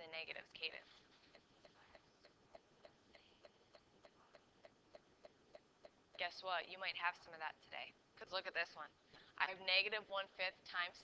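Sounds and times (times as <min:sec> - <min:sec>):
faint steady ticking: 0:00.0 - 0:11.0.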